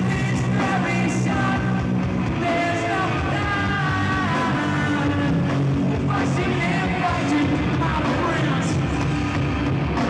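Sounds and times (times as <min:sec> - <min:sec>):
electric guitar: 0:00.0 - 0:10.0
live rock band playing: 0:00.0 - 0:10.0.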